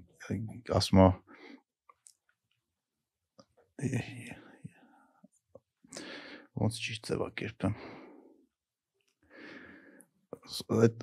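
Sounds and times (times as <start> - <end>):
soft conversational speech: 3.8 - 4.5.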